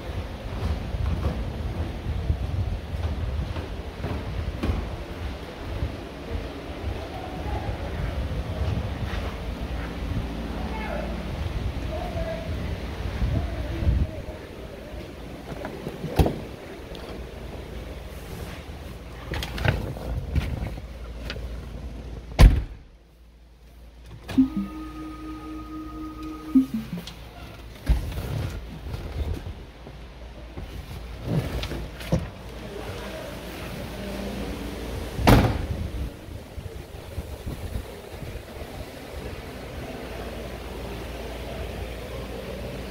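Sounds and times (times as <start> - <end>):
knocks and bumps: 3.0 - 5.0
car door shutting: 35.2 - 35.8.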